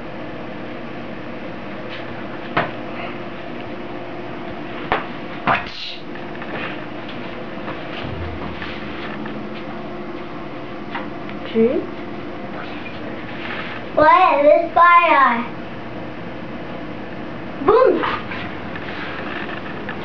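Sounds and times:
steady background hum: 0:00.0 - 0:20.0.

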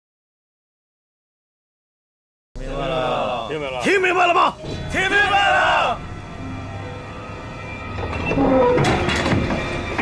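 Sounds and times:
steady low rumble: 0:04.5 - 0:08.2
metallic squeals and clanks: 0:04.6 - 0:10.0.

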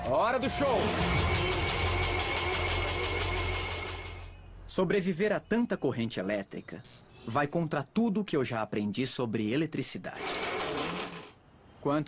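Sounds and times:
electric blender running: 0:10.2 - 0:11.3.

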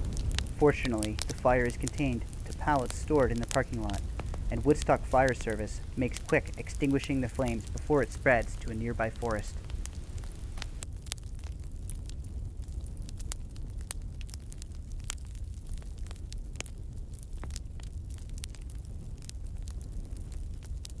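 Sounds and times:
fire crackling: 0:00.0 - 0:21.0.

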